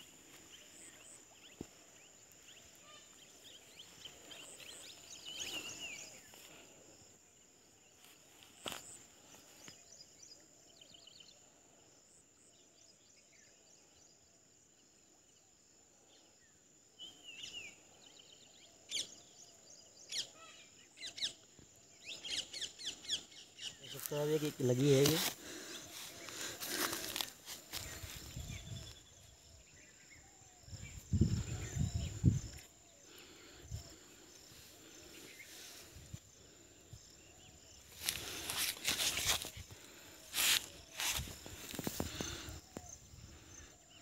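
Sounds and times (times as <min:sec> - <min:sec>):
birds calling: 0:22.0 - 0:44.0.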